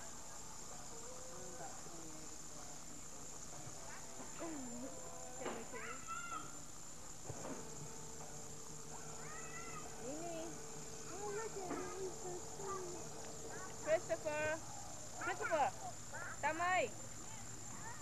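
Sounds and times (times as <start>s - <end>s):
steady background hiss: 0.0s - 18.0s
small children babbling and squealing: 5.7s - 6.6s, 9.2s - 10.0s.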